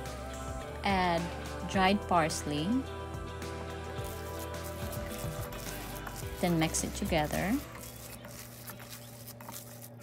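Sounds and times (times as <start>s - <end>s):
hands squishing ground meat: 4.0s - 10.0s.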